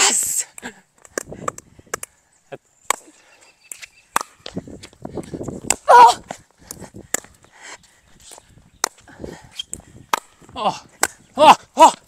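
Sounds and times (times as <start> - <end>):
paddles hitting plastic ball: 3.7 - 5.0, 5.6 - 7.4, 9.7 - 11.2.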